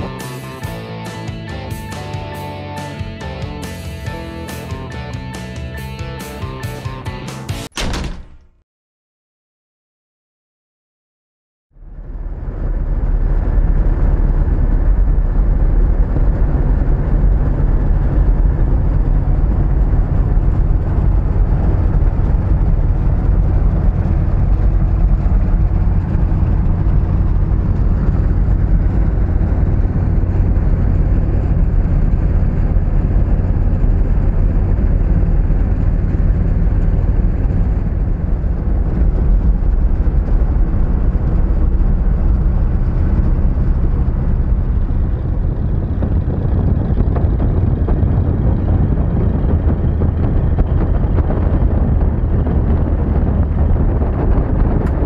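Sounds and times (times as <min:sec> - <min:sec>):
road noise: 0:00.0 - 0:07.0, 0:11.8 - 0:55.0
in-cab engine rumble: 0:11.8 - 0:55.0.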